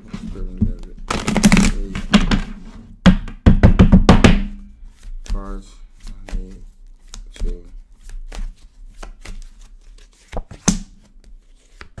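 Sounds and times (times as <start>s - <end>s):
cards being shuffled: 4.8s - 12.0s.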